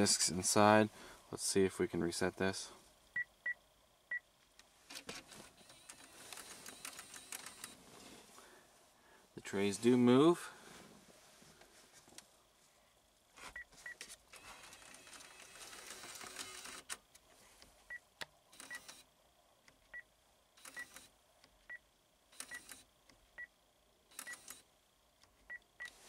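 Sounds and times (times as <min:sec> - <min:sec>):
mechanical whir: 0:04.9 - 0:07.8, 0:14.3 - 0:17.2.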